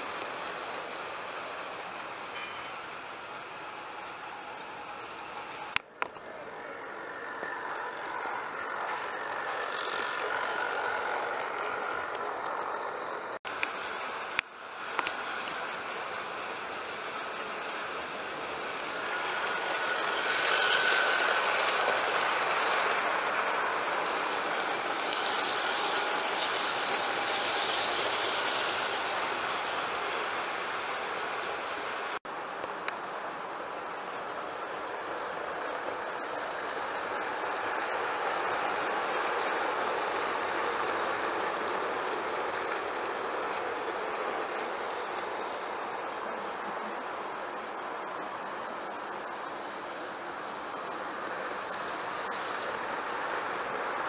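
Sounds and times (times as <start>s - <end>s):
model train motor whine: 0.0s - 54.0s
wheels clattering on rails: 0.0s - 54.0s.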